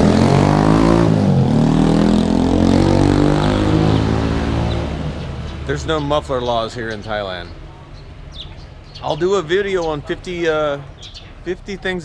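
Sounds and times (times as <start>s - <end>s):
motorbike engine revving: 0.0s - 6.1s.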